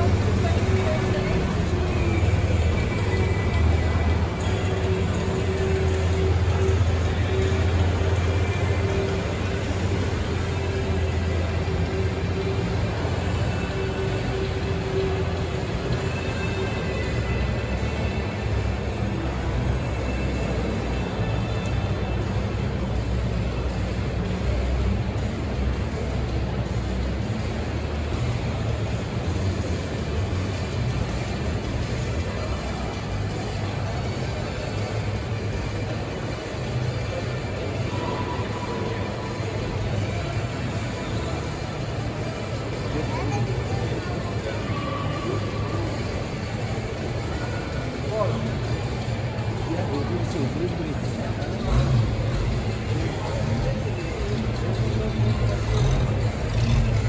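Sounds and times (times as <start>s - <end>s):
background music: 0.0s - 57.0s
indistinct crowd chatter: 0.0s - 57.0s.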